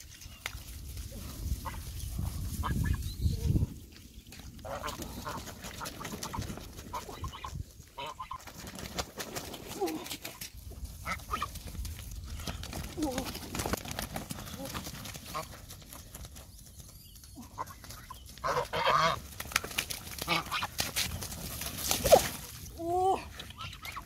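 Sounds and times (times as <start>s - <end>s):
rustling footsteps in grass: 0.0s - 5.4s
wings flapping: 4.5s - 22.7s
geese honking: 4.6s - 8.4s, 17.5s - 19.3s, 20.2s - 20.8s, 23.5s - 24.0s
goose squawking: 4.6s - 8.4s, 17.6s - 19.2s, 20.2s - 20.8s, 23.4s - 24.0s.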